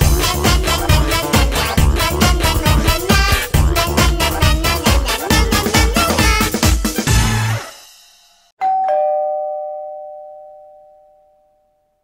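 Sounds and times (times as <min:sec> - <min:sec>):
music: 0:00.0 - 0:08.5
two-note chime: 0:08.6 - 0:12.0.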